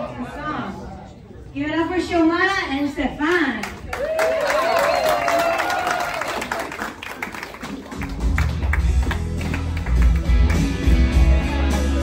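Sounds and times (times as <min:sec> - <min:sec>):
audience clapping and cheering: 0:03.6 - 0:12.0
song with heavy bass beat: 0:08.2 - 0:12.0.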